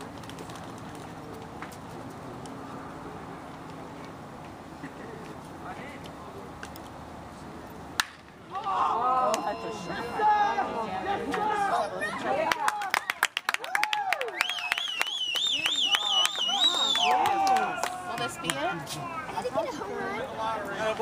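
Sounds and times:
murmur of voices: 4.8s - 13.3s, 15.6s - 21.0s
baseball bat cracking ball: 8.0s - 8.7s
spectators shouting and cheering: 8.5s - 19.4s.

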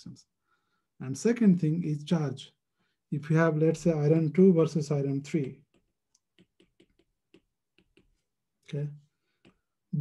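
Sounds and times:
stylus tapping tablet screen: 5.3s - 8.5s, 9.3s - 9.9s.

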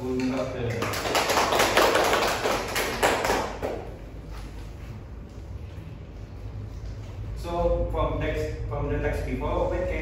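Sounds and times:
people clapping: 0.0s - 4.0s.

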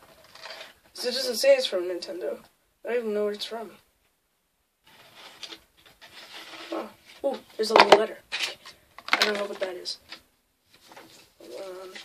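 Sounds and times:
hands rustling small objects: 4.9s - 12.0s.

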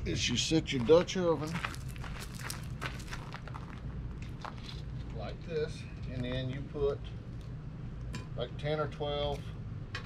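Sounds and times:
steady low hum: 0.0s - 10.0s
flip-flop footsteps on gravel: 0.5s - 5.2s.

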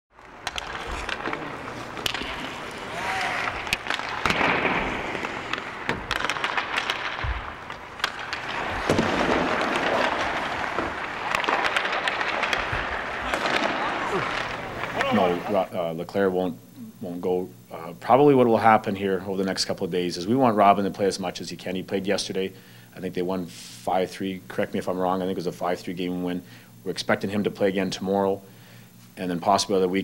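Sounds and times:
sticks striking pucks: 0.2s - 15.6s
pucks hitting boards: 0.2s - 15.7s
skate blades scraping ice: 0.2s - 15.7s
voices calling out: 0.8s - 4.3s, 13.0s - 15.8s.

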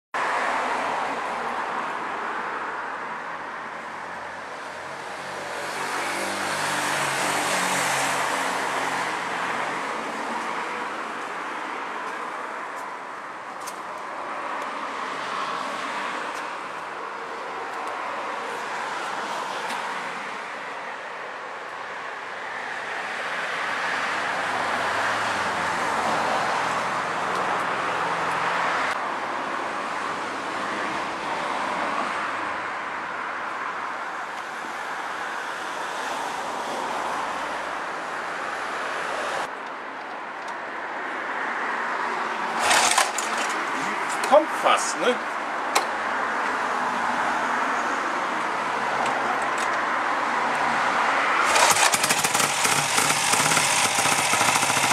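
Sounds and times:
road hum: 0.2s - 54.9s
vehicles passing: 0.2s - 54.9s.

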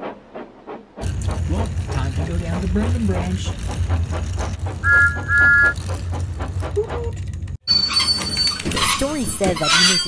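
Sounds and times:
toy train clicking on track: 1.0s - 10.0s
toy train motor humming: 1.0s - 10.0s
two-note train whistle: 4.8s - 5.8s.

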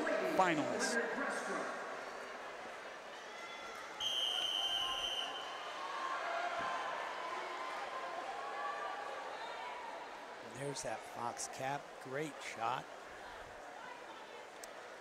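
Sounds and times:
crowd chatter: 0.0s - 15.0s
high-pitched whistle blast: 4.0s - 5.5s.

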